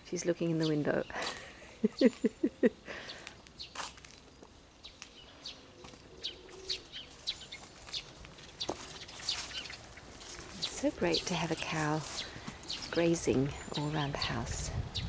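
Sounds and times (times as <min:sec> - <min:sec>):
small birds chirping: 0:00.0 - 0:15.0
person laughing: 0:01.2 - 0:03.2.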